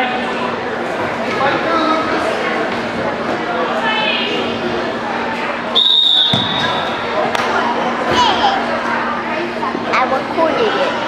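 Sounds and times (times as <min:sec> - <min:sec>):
gym chatter: 0:00.0 - 0:11.0
referee's whistle blast: 0:05.7 - 0:07.0.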